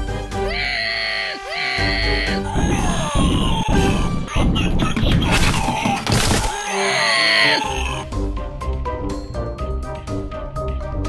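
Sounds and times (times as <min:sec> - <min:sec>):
bouncy background music: 0:00.0 - 0:11.0.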